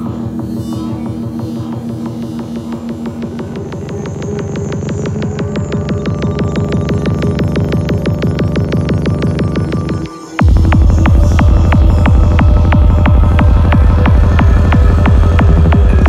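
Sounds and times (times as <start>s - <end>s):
heavy kick and rolling bass: 0.0s - 16.0s
rapid synth pulse: 0.0s - 16.0s.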